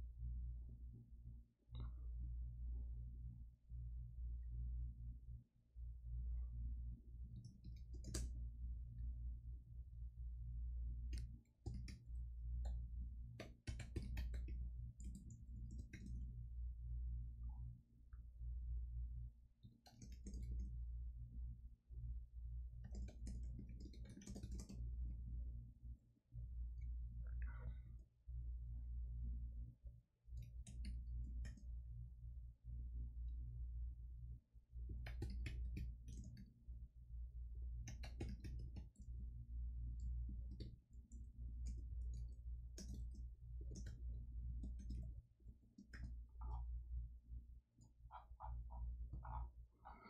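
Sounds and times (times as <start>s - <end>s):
low steady hum: 0.0s - 50.0s
computer keyboard typing: 7.4s - 8.4s, 11.2s - 12.1s, 13.4s - 16.3s, 19.8s - 20.7s, 22.8s - 24.8s, 34.9s - 36.4s, 37.9s - 39.2s, 40.0s - 45.1s.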